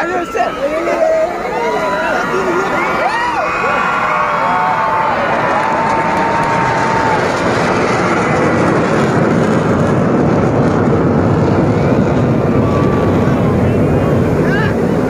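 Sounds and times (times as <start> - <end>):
crowd voices: 0.0 - 15.0
aircraft engine flying over: 1.7 - 15.0.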